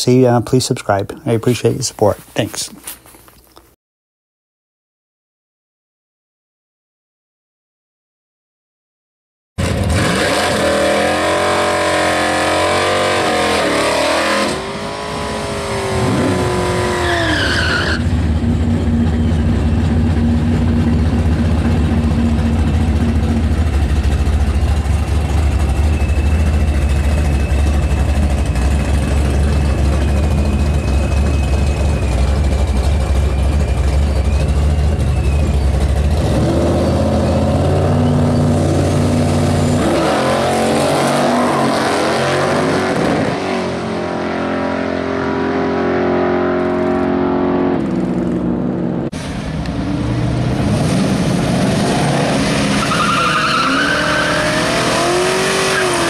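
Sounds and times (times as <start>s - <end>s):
car engine revving: 9.6s - 56.0s
cars accelerating away: 9.6s - 56.0s
engines rumbling at idle: 18.0s - 39.9s, 47.8s - 51.8s.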